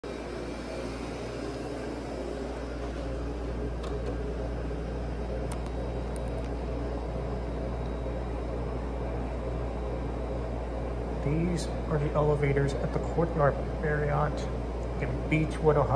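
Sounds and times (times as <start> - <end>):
low mechanical hum: 0.0 - 15.9.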